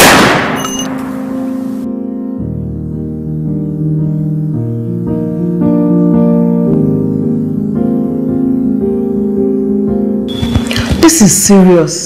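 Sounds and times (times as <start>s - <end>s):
background music: 0.4s - 12.0s.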